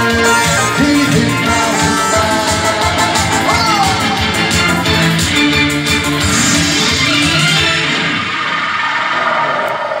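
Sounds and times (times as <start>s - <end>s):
synthesizer music with beat: 0.0s - 9.7s.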